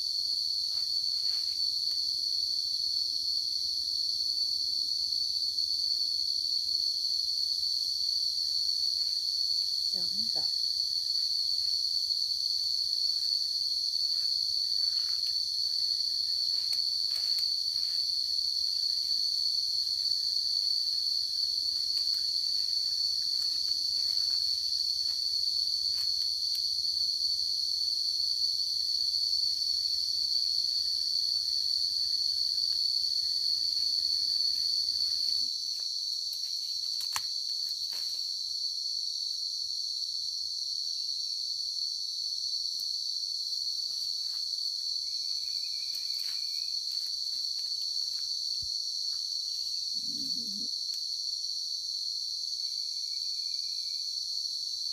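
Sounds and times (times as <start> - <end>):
high-pitched insect drone: 0.0 - 54.9.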